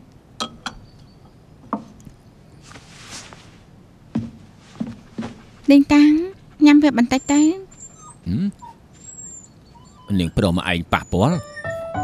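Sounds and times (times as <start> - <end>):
man's questioning grunt: 8.3 - 8.5.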